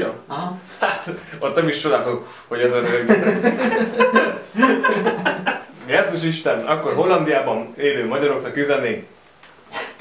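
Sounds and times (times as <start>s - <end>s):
men talking: 0.0s - 9.1s
men laughing: 2.8s - 5.8s.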